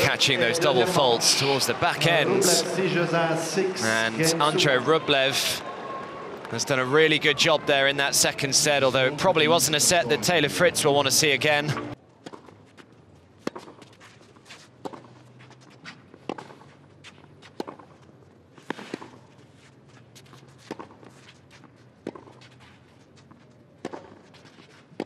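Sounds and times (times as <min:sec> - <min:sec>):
racket hitting tennis ball: 0:12.2 - 0:18.0, 0:18.6 - 0:19.4, 0:20.2 - 0:22.7, 0:23.8 - 0:25.0.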